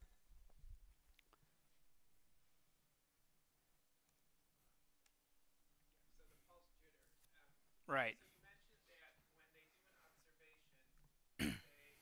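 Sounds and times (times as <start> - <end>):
person coughing: 11.4 - 11.8.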